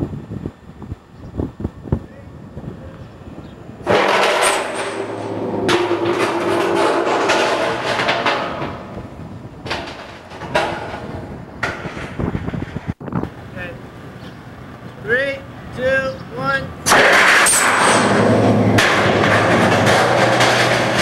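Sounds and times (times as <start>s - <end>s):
noisy rumble: 0.0s - 21.0s
tank launching with loud rush: 3.8s - 8.9s, 16.8s - 21.0s.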